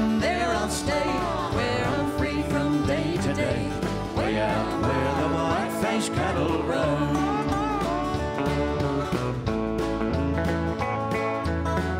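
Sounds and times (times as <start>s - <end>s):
acoustic guitars strumming: 0.0s - 11.9s
bass: 0.0s - 11.9s
country band playing: 0.0s - 11.9s
drums: 0.0s - 11.9s.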